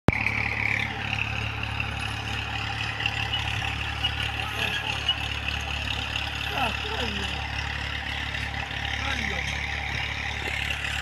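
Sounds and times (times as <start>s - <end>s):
distant tractor engine running: 0.1s - 11.0s.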